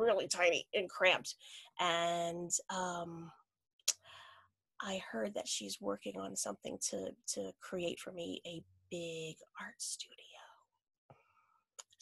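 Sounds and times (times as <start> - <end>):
woman whispering: 9.4 - 10.5.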